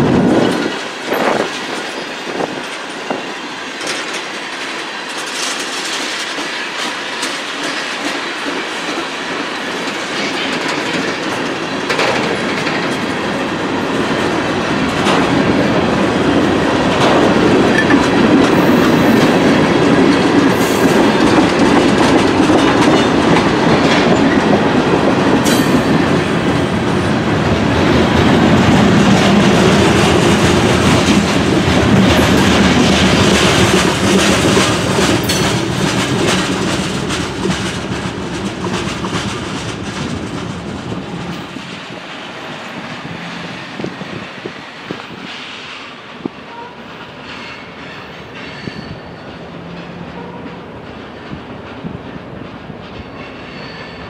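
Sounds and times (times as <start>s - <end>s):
steel wheels rumbling on rail: 0.0s - 54.0s.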